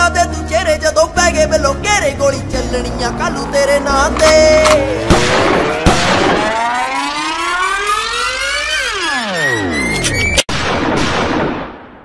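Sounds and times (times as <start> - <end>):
siren-like rising tone: 3.2 - 10.4.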